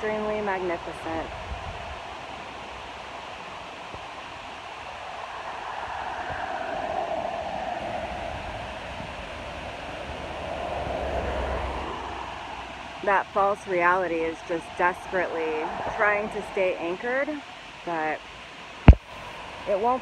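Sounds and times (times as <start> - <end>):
outdoor rushing noise: 0.8 - 17.1.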